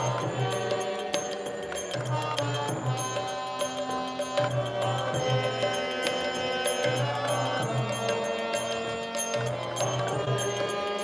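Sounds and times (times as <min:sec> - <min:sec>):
hand drum steady rhythm: 0:00.0 - 0:11.0
harmonium chords: 0:00.0 - 0:11.0.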